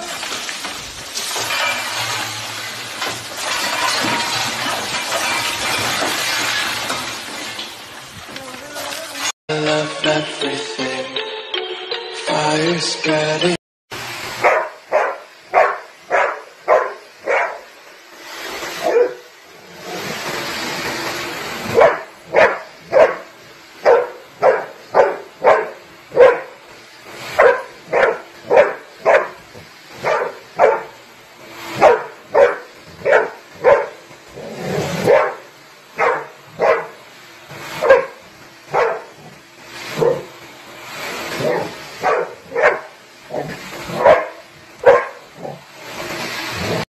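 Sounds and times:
dog barking: 14.4 - 17.7, 18.8 - 19.2, 21.7 - 26.6, 27.4 - 29.4, 30.0 - 30.9, 31.8 - 34.0, 35.0 - 37.0, 37.8 - 39.2, 40.0 - 40.3, 41.4 - 45.6.

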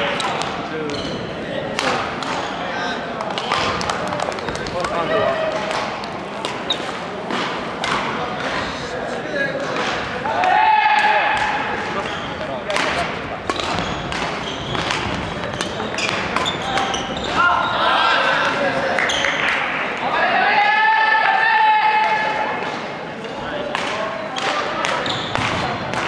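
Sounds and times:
racket hitting shuttlecock: 5.5 - 8.6, 9.6 - 17.0
people shouting: 10.2 - 11.7, 20.1 - 22.5.

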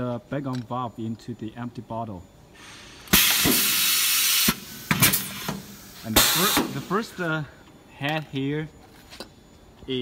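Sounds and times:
compressed air hissing: 2.6 - 7.0.

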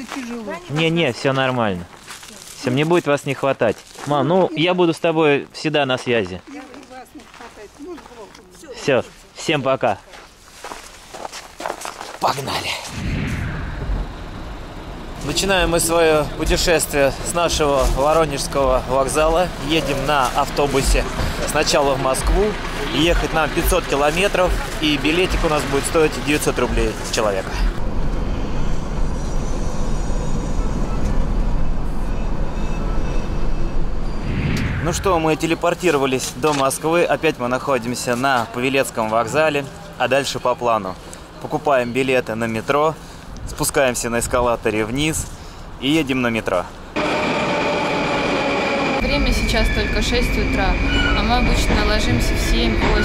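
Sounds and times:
footsteps on packed snow: 0.0 - 4.6, 6.2 - 12.9
road noise: 0.0 - 53.0
bus engine drone: 12.4 - 42.1, 44.6 - 53.0.

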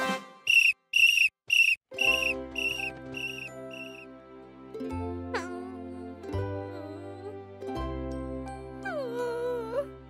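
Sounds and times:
cartoon whistle toots: 0.4 - 4.0
soft background music: 1.9 - 10.0.

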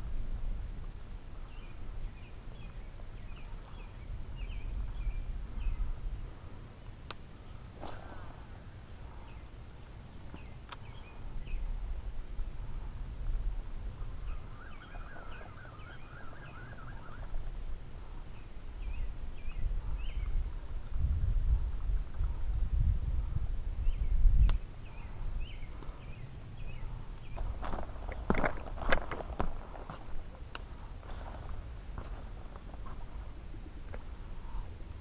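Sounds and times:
wind rumble on microphone: 0.0 - 35.0
birds chirping: 1.4 - 6.5, 7.3 - 11.9, 13.9 - 20.6, 23.8 - 34.8
warbling bird trill: 14.2 - 17.4.

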